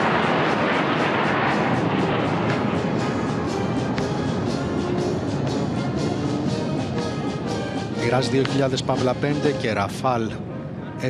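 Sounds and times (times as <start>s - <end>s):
jets flying past: 0.0s - 8.0s.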